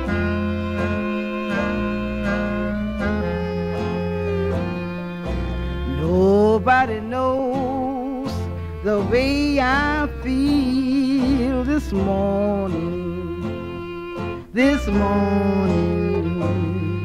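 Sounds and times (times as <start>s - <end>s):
sliding wavering melody line: 0.0s - 8.1s
jug band playing slow blues: 0.0s - 17.0s.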